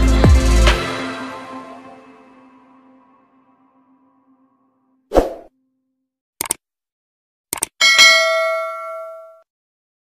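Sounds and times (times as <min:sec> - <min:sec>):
mouse clicks: 0:06.4 - 0:06.6, 0:07.5 - 0:07.8
bell ding: 0:07.8 - 0:09.4.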